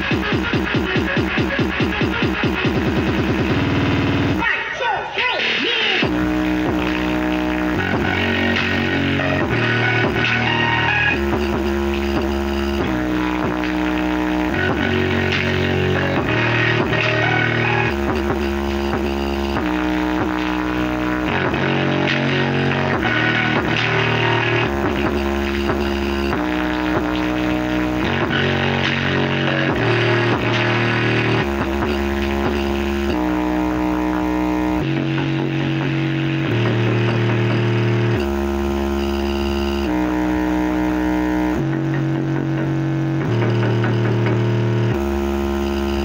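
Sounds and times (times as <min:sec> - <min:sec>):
loud music through a woofer: 0:00.0 - 0:46.0.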